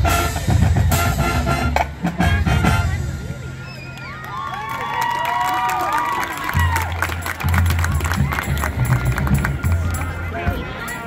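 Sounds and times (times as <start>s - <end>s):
drums: 0.0s - 4.3s, 6.3s - 11.0s
marching band playing: 0.0s - 4.3s, 6.2s - 11.0s
spectators chattering: 0.0s - 11.0s.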